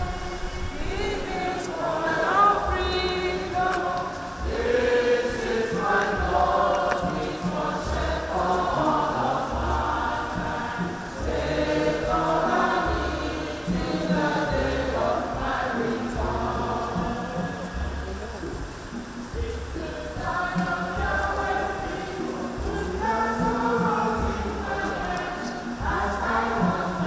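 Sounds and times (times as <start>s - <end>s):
church choir singing a hymn: 0.0s - 27.0s
low repeating beat: 0.0s - 27.0s.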